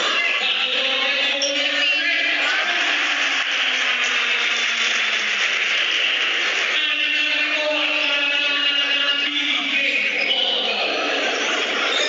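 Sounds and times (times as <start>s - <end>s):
arena crowd cheering: 0.0s - 12.0s.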